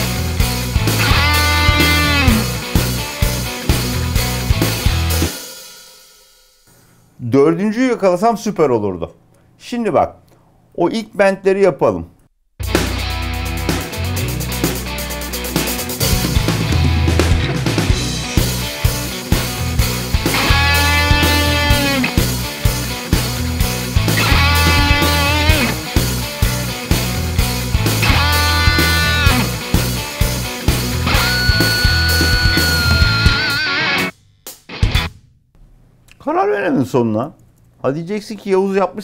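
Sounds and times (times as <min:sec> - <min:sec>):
rock backing track: 0:00.0 - 0:05.8, 0:12.6 - 0:35.2
electric guitar bent notes: 0:00.8 - 0:03.0, 0:16.2 - 0:34.1.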